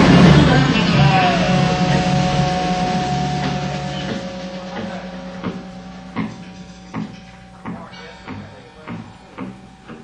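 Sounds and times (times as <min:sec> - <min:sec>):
electric guitar chord ringing: 0:00.0 - 0:10.0
low amplifier hum: 0:00.0 - 0:10.0.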